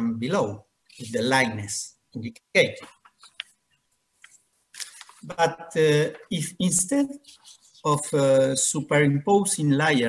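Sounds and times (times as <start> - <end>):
person speaking: 0.0 - 3.6, 4.2 - 10.0.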